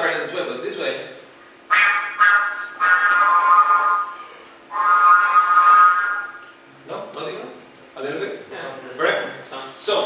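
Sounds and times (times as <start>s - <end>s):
flute playing held notes: 1.7s - 6.6s.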